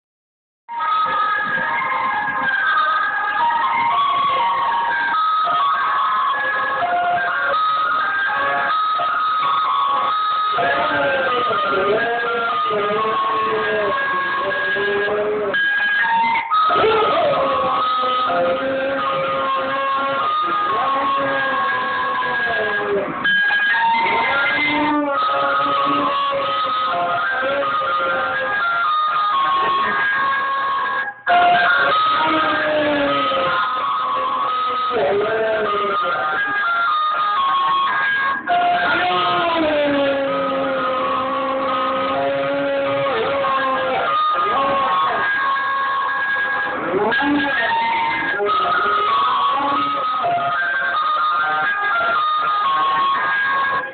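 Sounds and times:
ice cream van chime tune: 0.7 - 53.9
dog howling: 1.5 - 53.9.

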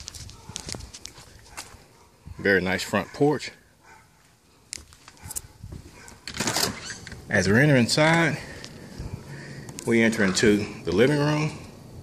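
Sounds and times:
footsteps outdoors: 0.0 - 11.9.

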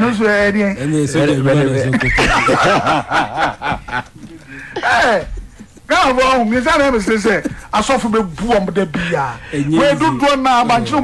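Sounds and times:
man laughing: 1.8 - 8.0.

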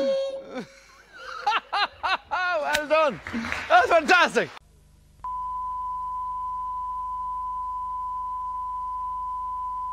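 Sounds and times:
faint low hum: 4.6 - 9.9
steady test tone: 5.2 - 9.9.

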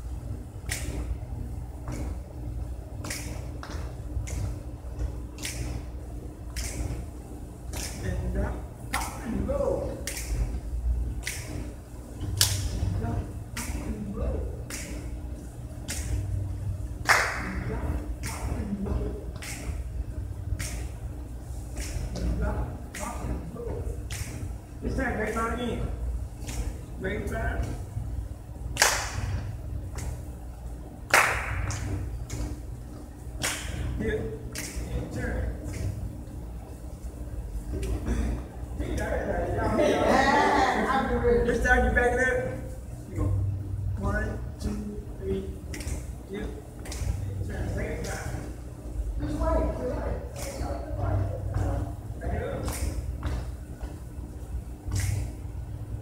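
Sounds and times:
steady low hum: 0.0 - 56.0
voices echoing in a hall: 33.8 - 55.7.

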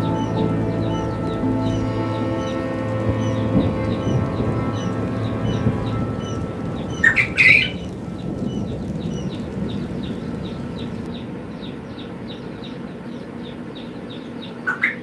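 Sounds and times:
chicks peeping: 0.0 - 15.0
low steady background noise: 0.0 - 15.0.

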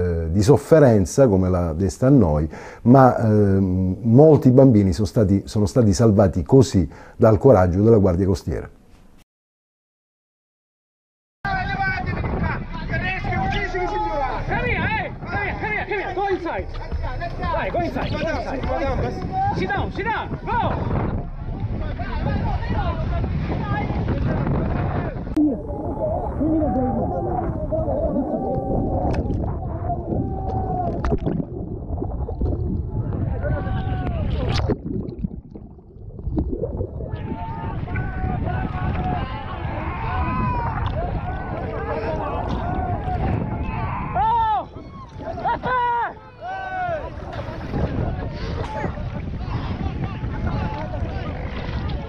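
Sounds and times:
people shouting and crying out: 11.5 - 31.6, 32.8 - 34.6, 37.0 - 52.0
wind and sea rumble: 11.5 - 52.0
people screaming and wailing: 24.4 - 31.2, 32.8 - 34.6, 37.0 - 52.0.

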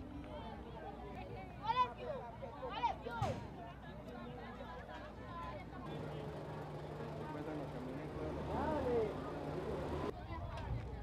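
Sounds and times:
voices in the background: 0.0 - 11.0
low engine hum: 5.8 - 10.2.

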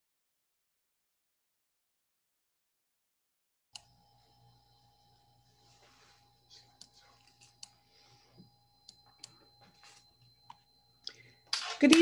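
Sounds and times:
faint thin whine: 3.8 - 12.0
woman speaking: 11.6 - 12.0.

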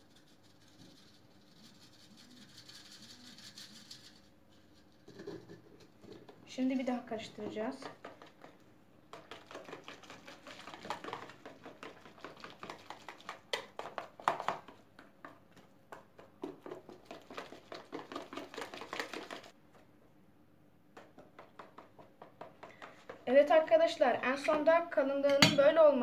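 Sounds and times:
whisk clicking against plastic bowl: 7.8 - 14.8, 15.9 - 19.5.

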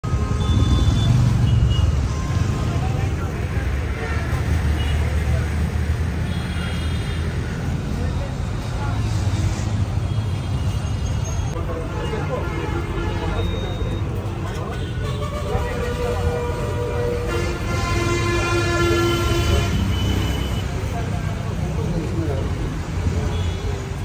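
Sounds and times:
traffic passing: 0.0 - 24.0
crowd talking: 1.8 - 24.0.

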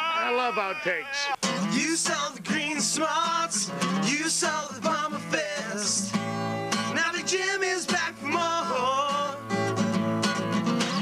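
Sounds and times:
men singing: 0.0 - 9.6
acoustic guitar strumming: 0.0 - 11.0.

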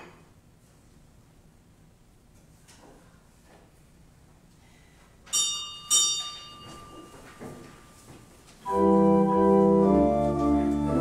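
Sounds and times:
small high-pitched bell ringing: 5.3 - 7.3.

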